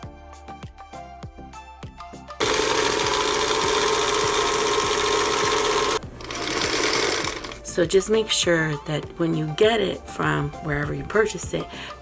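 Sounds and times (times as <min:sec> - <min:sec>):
background music: 0:00.0 - 0:12.0
sewing machine stitching: 0:02.4 - 0:07.7.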